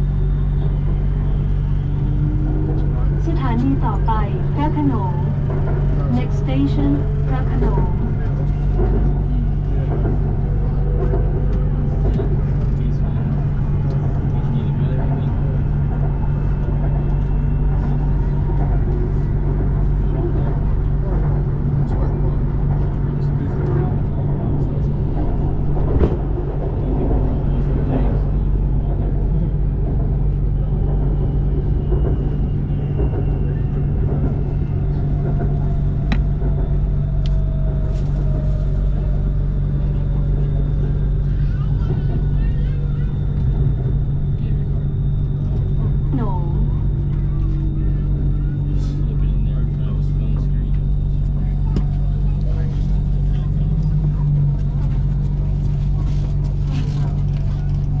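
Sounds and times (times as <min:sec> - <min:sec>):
metro train interior drone: 0:00.0 - 0:58.0
passing train: 0:00.0 - 0:58.0.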